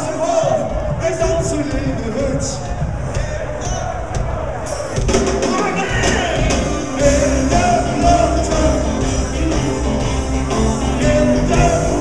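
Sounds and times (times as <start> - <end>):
drums: 0.0 - 12.0
live rock band playing: 4.6 - 12.0.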